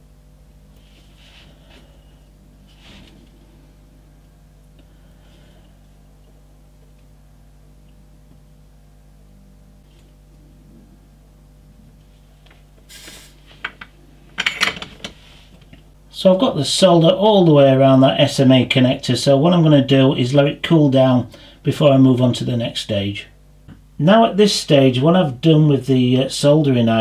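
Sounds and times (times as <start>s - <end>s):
low electrical hum: 0.0s - 27.0s
soldering iron clattering down: 12.9s - 15.8s.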